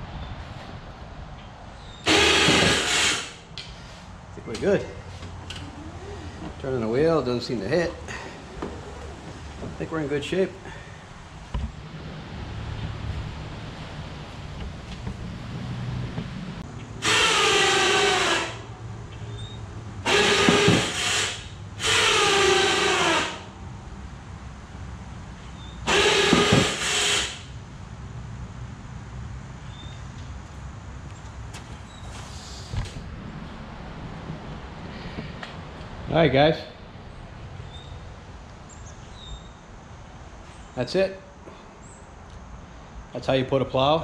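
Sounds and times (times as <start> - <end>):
electric winch motor whine: 2.1 - 3.4, 17.0 - 18.8, 19.4 - 23.5, 25.8 - 27.5.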